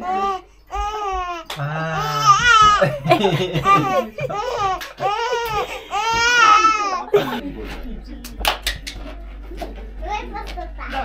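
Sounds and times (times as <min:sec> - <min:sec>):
baby squealing: 0:00.0 - 0:02.8, 0:03.7 - 0:07.1.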